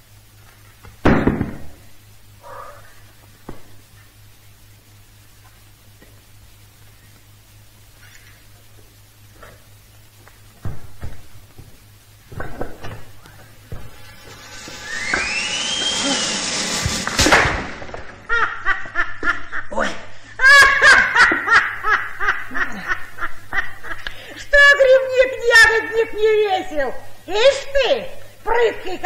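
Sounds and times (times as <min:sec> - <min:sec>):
sharp thud: 0:15.2 - 0:17.9
loud laughter: 0:18.2 - 0:24.1.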